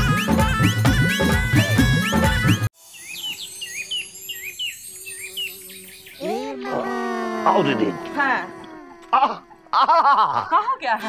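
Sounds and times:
bird chirping: 2.8s - 6.6s.

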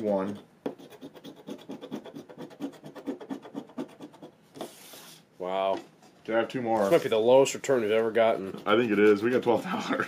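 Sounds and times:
coin scratching lottery ticket: 8.2s - 9.8s.

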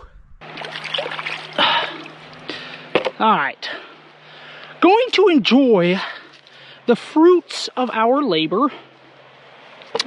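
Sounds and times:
loud water splash: 0.4s - 2.3s
creek water trickling: 0.4s - 9.9s.

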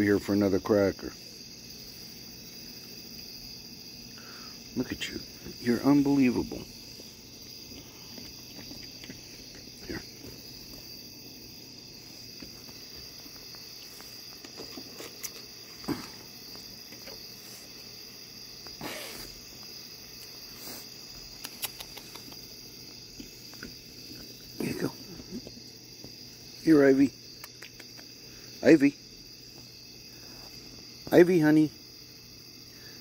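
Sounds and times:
crickets chirring: 0.0s - 33.0s.

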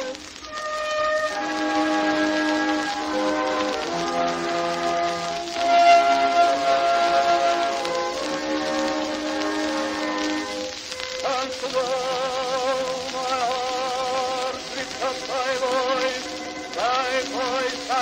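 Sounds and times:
record surface hiss and crackle: 0.0s - 18.0s.

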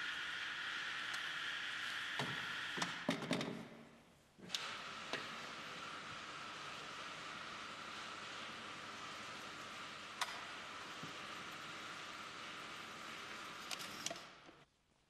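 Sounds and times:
room noise hiss: 0.0s - 15.0s.

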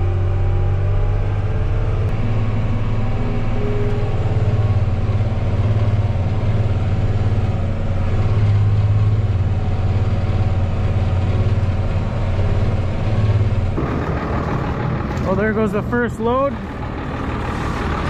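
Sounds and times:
tractor and harvester droning: 0.0s - 18.0s.

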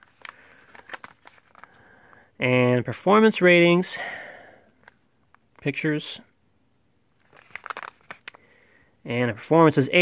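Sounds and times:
plastic wrap crinkling: 0.0s - 1.8s, 7.2s - 8.4s.

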